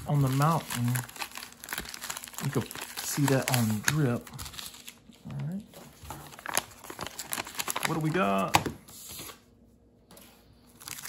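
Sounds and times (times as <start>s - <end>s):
paper envelope crinkling: 0.0s - 5.2s, 5.9s - 9.4s, 10.7s - 11.0s.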